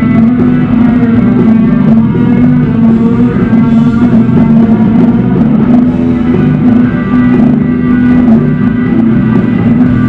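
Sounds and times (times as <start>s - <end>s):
bass guitar: 0.0s - 10.0s
drum kit: 0.0s - 10.0s
electric guitars: 0.0s - 10.0s.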